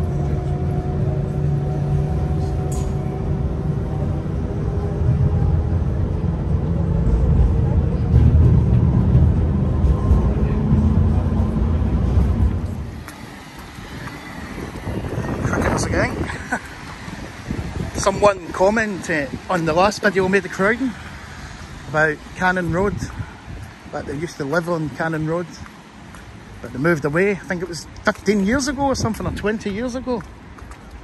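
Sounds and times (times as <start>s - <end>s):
heavy vehicle engine rumble: 0.0s - 31.0s.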